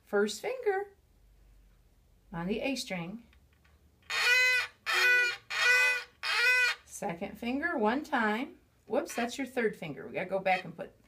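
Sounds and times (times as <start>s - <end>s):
violin bow strokes: 4.1s - 6.8s.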